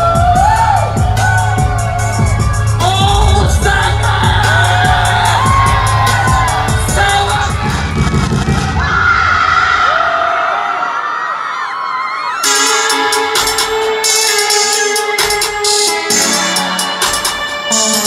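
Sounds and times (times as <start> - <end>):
hip-hop music over speakers: 0.0 - 9.6, 12.4 - 18.0
crowd voices and shouts: 0.0 - 18.0.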